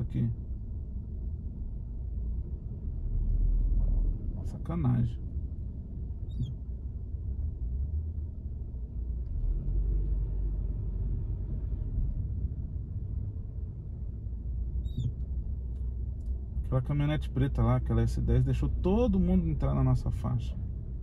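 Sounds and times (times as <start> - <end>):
car engine rumble: 0.0 - 21.0
road noise: 0.0 - 21.0.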